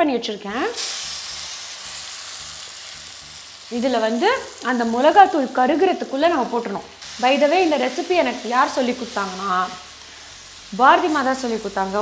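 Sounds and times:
woman talking: 0:00.0 - 0:00.8, 0:03.7 - 0:09.8, 0:10.7 - 0:12.0
food sizzling in a pan: 0:00.0 - 0:12.0.

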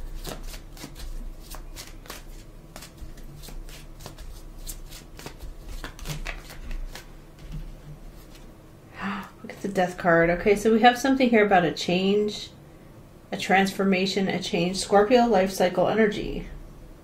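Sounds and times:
cards being shuffled: 0:00.0 - 0:08.5.

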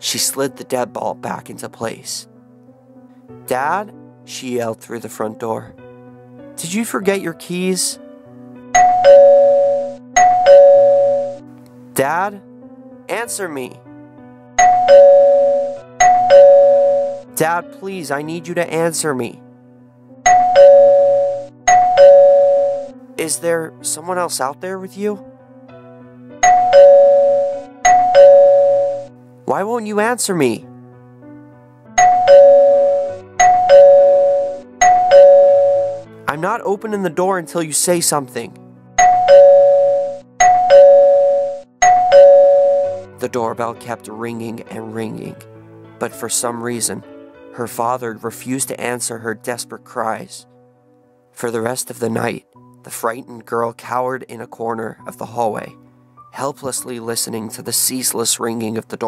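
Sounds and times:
two-tone doorbell chime: 0:08.8 - 0:11.4, 0:14.6 - 0:17.3, 0:20.3 - 0:22.9, 0:26.4 - 0:29.1, 0:32.0 - 0:36.1, 0:39.0 - 0:43.1.

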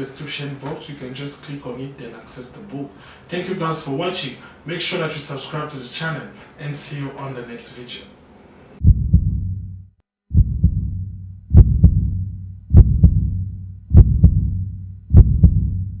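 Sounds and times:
deep double thumps: 0:08.8 - 0:16.0.

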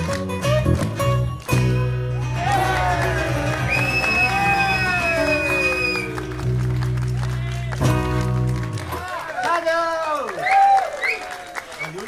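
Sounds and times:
acoustic guitars: 0:00.0 - 0:09.0
electric bass: 0:00.0 - 0:09.0.

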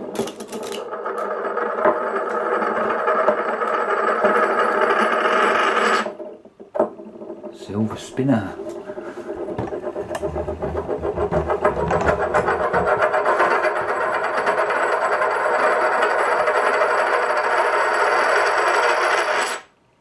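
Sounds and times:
coin spinning on wooden table: 0:00.0 - 0:19.7.

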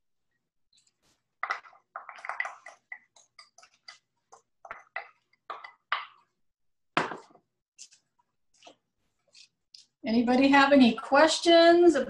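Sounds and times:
wooden spoon scraping glass bowl: 0:07.8 - 0:11.1.

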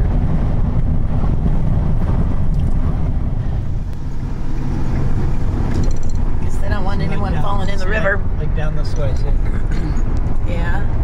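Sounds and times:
van engine and tyre rumble: 0:00.0 - 0:11.0.

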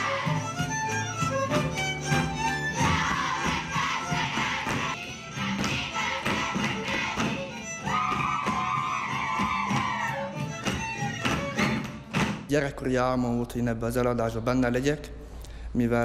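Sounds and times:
string band playing dance music: 0:00.0 - 0:12.5
boots stamping on stage boards: 0:00.1 - 0:12.5.

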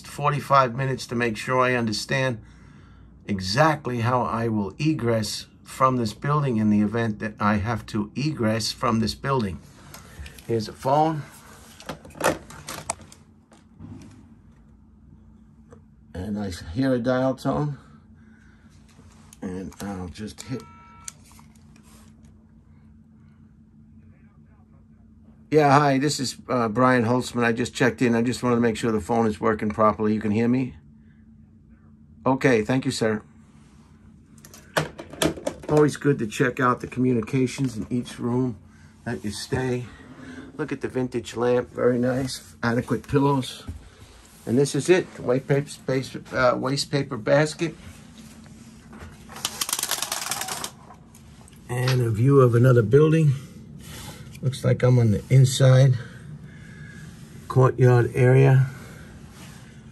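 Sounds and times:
keypad tone: 0:20.4 - 0:21.2
faint muffled sounds: 0:21.5 - 0:25.5.

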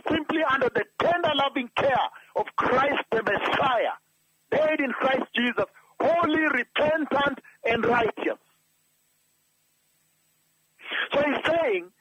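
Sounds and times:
man speaking: 0:00.0 - 0:08.5, 0:10.8 - 0:12.0.

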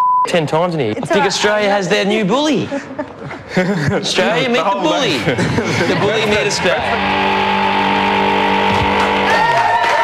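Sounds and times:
synthesizer chord: 0:06.2 - 0:09.4.

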